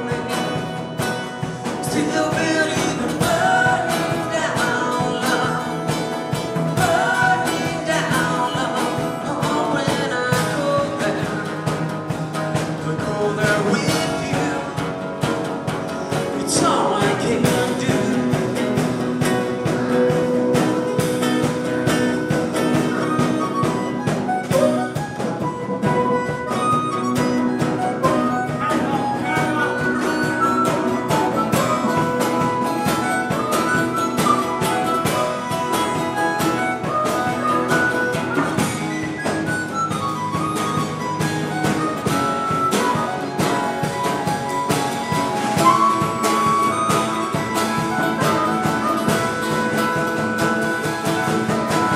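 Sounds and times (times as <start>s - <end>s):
acoustic guitar: 0.0s - 51.9s
drum kit: 0.0s - 51.9s
harmonica lead line: 0.0s - 51.9s.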